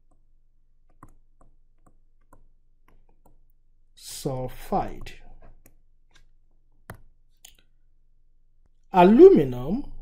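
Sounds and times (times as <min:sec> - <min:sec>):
person speaking: 0:04.0 - 0:05.4, 0:08.9 - 0:10.0.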